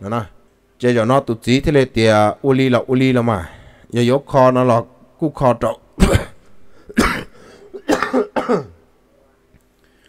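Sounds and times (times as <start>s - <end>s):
man coughing: 6.0s - 8.8s
throat clearing: 6.0s - 8.8s.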